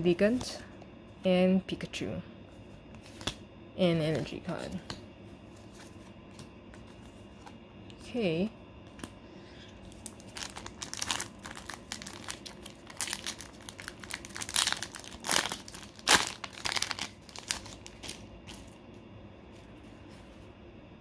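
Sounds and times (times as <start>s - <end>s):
foil wrapper crinkling: 9.8s - 18.8s.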